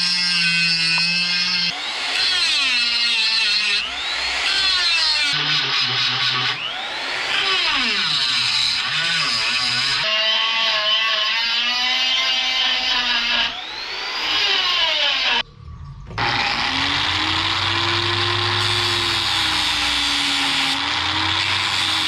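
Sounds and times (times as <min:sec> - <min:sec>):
angle grinder grinding metal: 0:00.0 - 0:22.0.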